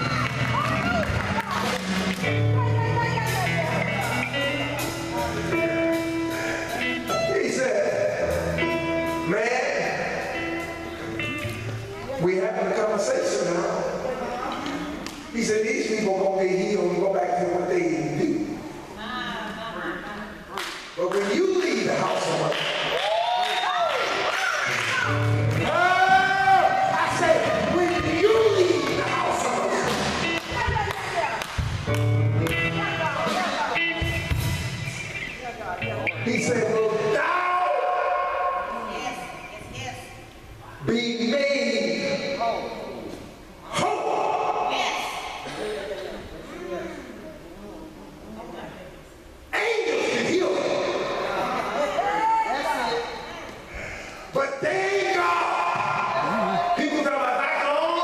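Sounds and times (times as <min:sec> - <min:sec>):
electric bass: 0:00.0 - 0:12.2, 0:24.7 - 0:37.0
live band playing: 0:00.0 - 0:16.0, 0:23.7 - 0:37.4
man preaching through a microphone: 0:07.1 - 0:08.6, 0:09.2 - 0:10.3, 0:12.2 - 0:14.1, 0:15.3 - 0:18.6, 0:21.0 - 0:22.8, 0:25.6 - 0:30.3, 0:36.2 - 0:38.8, 0:40.8 - 0:42.9, 0:49.5 - 0:51.2, 0:54.3 - 0:58.0
drum kit hits: 0:31.6 - 0:35.2.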